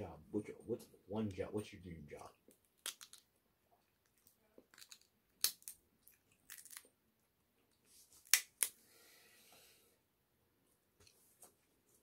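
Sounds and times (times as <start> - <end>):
shell snapping: 2.5 - 3.2, 4.1 - 5.8
shrimp shell cracking: 2.5 - 3.3, 4.0 - 6.9.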